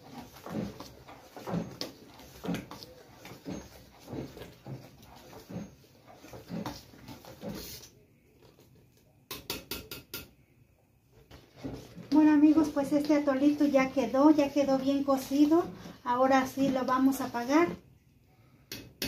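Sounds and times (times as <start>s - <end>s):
spoon scraping a pot: 0.0s - 7.9s, 11.3s - 17.8s
liquid boiling: 0.0s - 8.9s, 11.1s - 17.9s.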